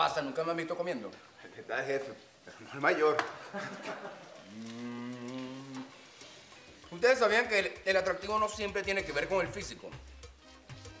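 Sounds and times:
person speaking: 4.2 - 6.1
long low moo-like call: 4.5 - 6.0.

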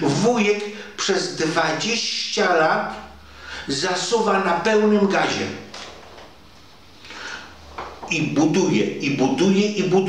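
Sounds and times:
man speaking: 0.0 - 5.7, 8.0 - 10.0
faint breath drawn in: 3.2 - 3.7, 7.0 - 7.6.

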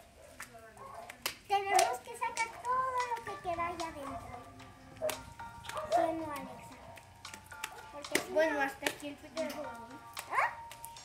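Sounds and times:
child's voice: 1.5 - 6.8, 7.9 - 10.6.

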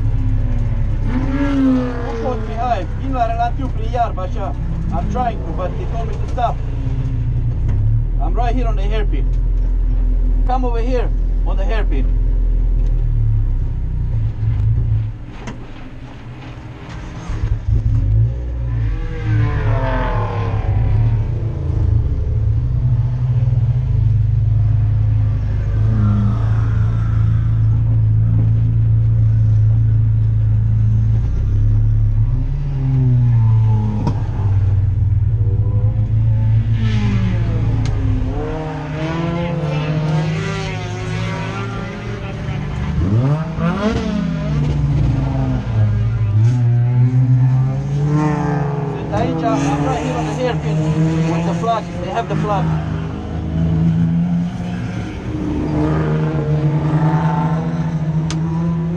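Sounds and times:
race car engine droning: 0.0 - 58.9
race cars revving past: 0.6 - 3.0, 17.4 - 22.3, 32.2 - 58.9.

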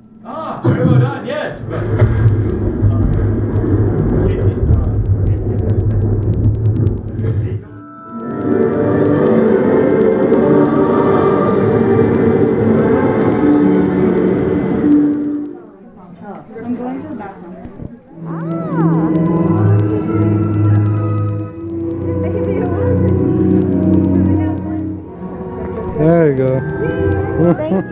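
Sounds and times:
low rumble: 1.5 - 7.8.

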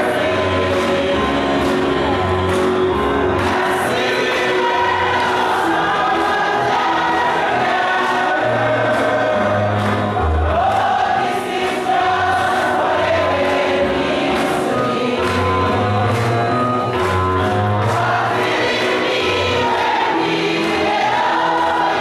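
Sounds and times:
congregation singing gospel song: 0.0 - 22.0
musical accompaniment with beat: 0.0 - 22.0.

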